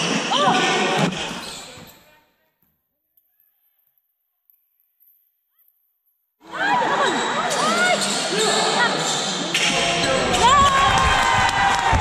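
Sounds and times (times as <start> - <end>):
voices: 6.5 - 12.0.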